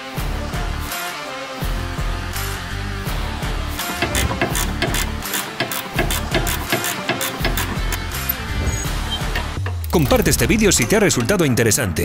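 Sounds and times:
background music: 0:00.0 - 0:12.0
ratchet wrench clicking: 0:03.8 - 0:08.4.

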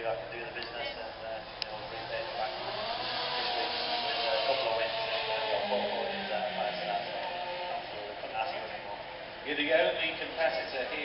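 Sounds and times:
speech over public-address system: 0:00.0 - 0:02.1.

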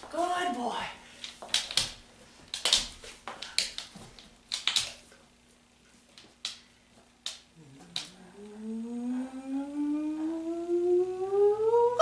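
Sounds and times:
dog claws clicking on hard floor: 0:01.2 - 0:05.2.

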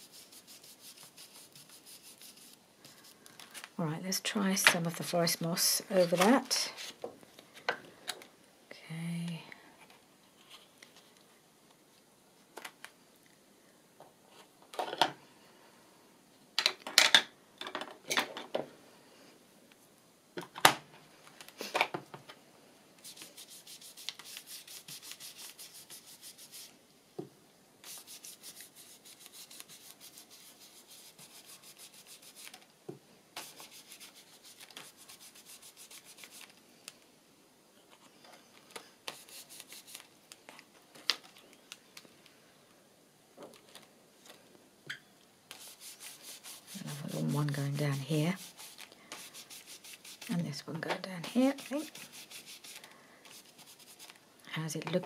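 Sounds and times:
brush scrubbing on paper: 0:00.0 - 0:03.2, 0:23.0 - 0:26.8, 0:27.8 - 0:32.6, 0:33.4 - 0:36.5, 0:39.1 - 0:40.0, 0:45.5 - 0:50.6, 0:51.3 - 0:54.2.

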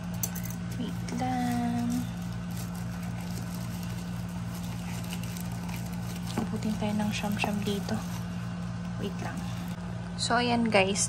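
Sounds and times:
steady low hum: 0:00.0 - 0:11.0
plastic wrapping rustling: 0:00.1 - 0:09.8.

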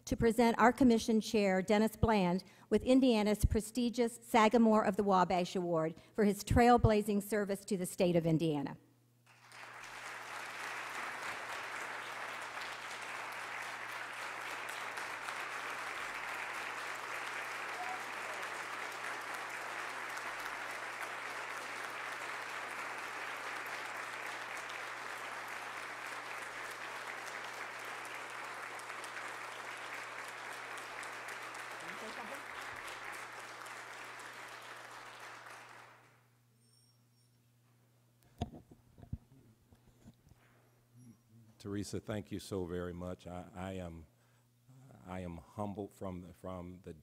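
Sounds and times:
audience applauding: 0:09.3 - 0:36.2.

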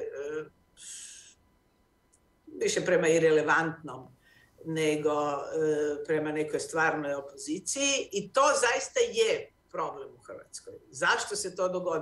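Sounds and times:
sharp intake of breath: 0:00.8 - 0:01.4.

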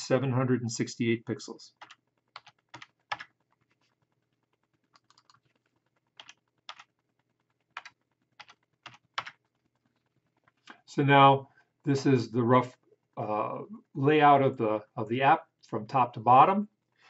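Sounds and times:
keyboard keys tapping: 0:01.8 - 0:03.9, 0:04.8 - 0:06.9, 0:07.6 - 0:09.4.

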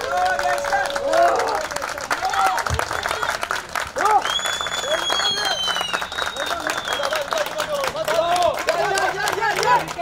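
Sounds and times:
spectators shouting: 0:00.0 - 0:02.6
spectators clapping: 0:00.0 - 0:10.0
high whistle-like tone: 0:04.2 - 0:07.2.

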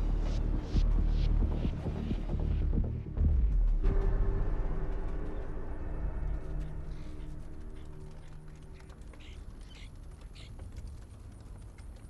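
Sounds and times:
low throbbing bass drone: 0:00.0 - 0:08.4.

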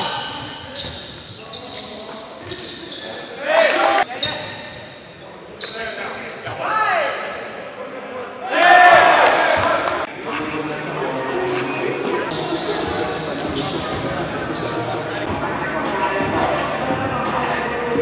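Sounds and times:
players shouting: 0:08.4 - 0:10.1.

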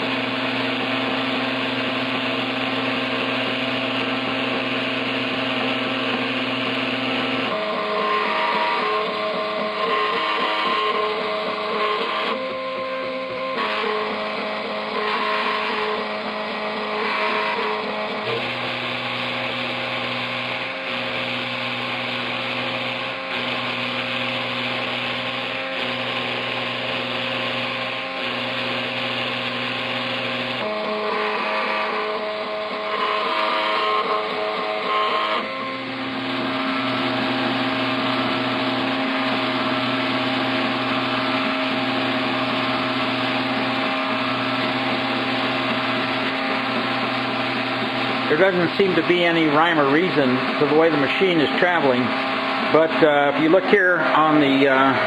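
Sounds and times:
servo motors whining: 0:00.0 - 0:53.4
milling spindle running: 0:00.0 - 0:55.0.

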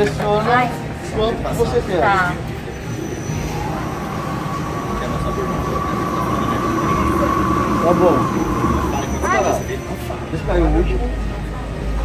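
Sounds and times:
peanut grinder motor whine: 0:03.0 - 0:10.0.

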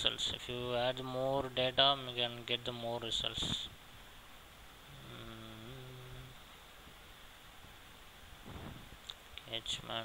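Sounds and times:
man humming: 0:04.9 - 0:06.5.

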